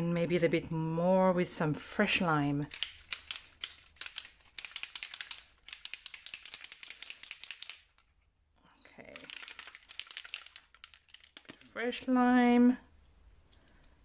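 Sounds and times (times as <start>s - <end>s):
spray bottle rattling when shaken: 2.7s - 8.1s, 9.0s - 11.8s.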